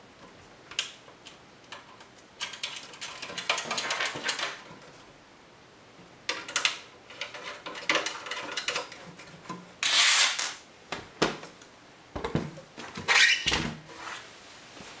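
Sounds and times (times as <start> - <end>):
panel scraping and rubbing: 12.8 - 15.0.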